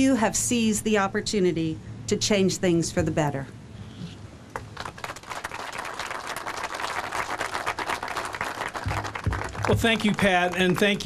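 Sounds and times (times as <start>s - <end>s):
small group applauding: 4.6s - 11.0s.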